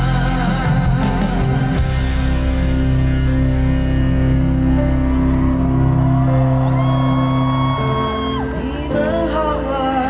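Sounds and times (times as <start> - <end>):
live pop-rock band music: 0.0 - 10.0.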